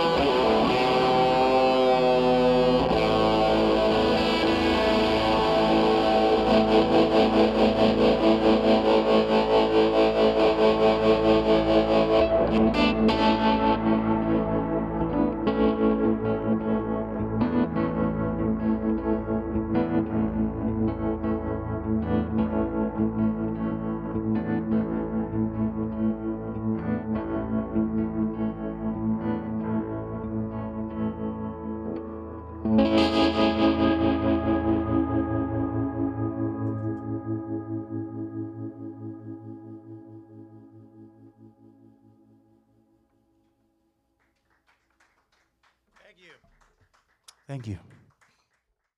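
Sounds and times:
electric guitar pulsing: 0.0 - 42.3.

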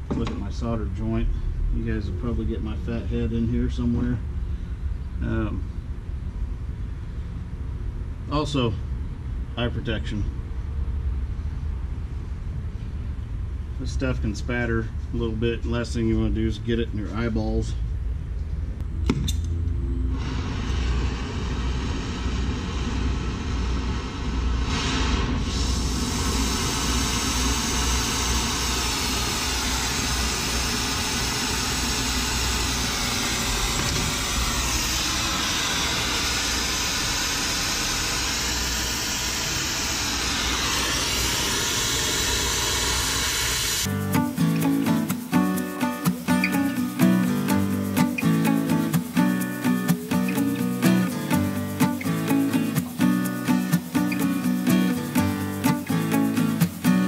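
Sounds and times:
torch hissing: 20.1 - 57.0
acoustic guitar music: 43.8 - 57.0.

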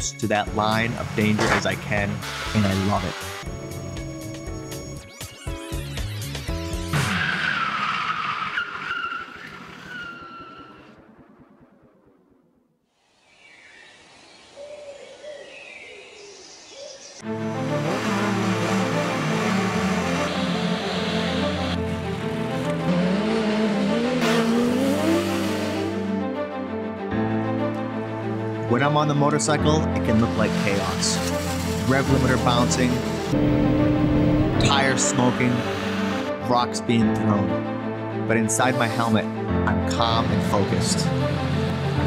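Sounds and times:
music: 0.0 - 7.3, 17.2 - 42.0
motorcycle engine revving: 0.7 - 4.9, 6.6 - 7.9, 17.2 - 26.5, 30.3 - 36.4.

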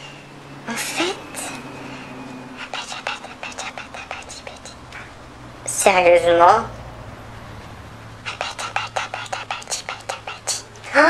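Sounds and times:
faint low hum: 0.0 - 11.0
person whispering: 0.7 - 1.6, 2.6 - 5.1, 8.2 - 11.0.

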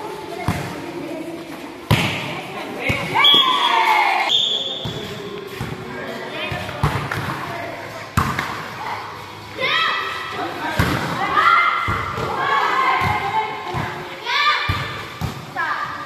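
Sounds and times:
volleyball being hit: 1.9 - 3.2.

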